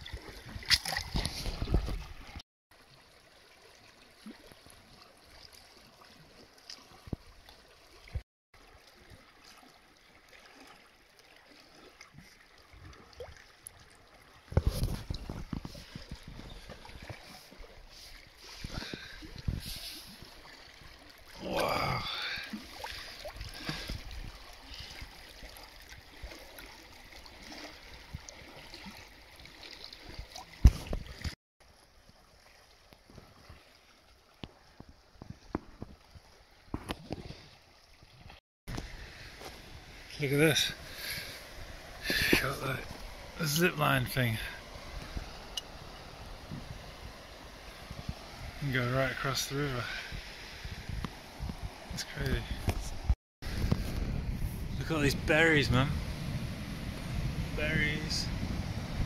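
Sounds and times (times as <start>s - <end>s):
lake water lapping: 0.0s - 58.9s.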